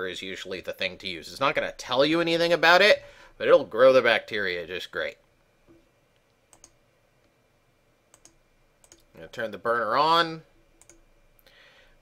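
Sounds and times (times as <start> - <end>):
computer mouse clicks: 6.5 - 6.8, 8.1 - 9.1, 10.8 - 11.1.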